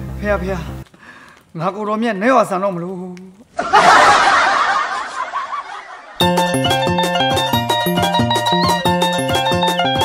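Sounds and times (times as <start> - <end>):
laugh track: 3.6 - 6.6.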